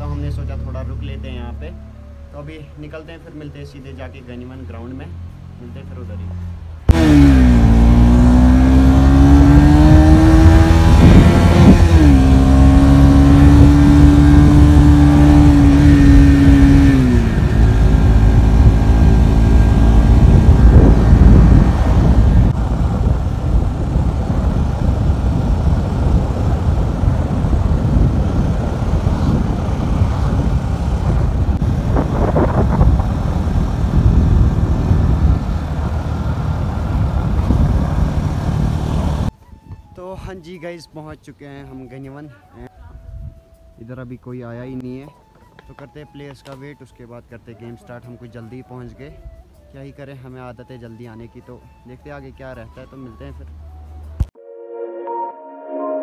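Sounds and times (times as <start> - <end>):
motorcycle engine running: 6.9 - 39.3
wind buffeting microphone: 6.9 - 40.0.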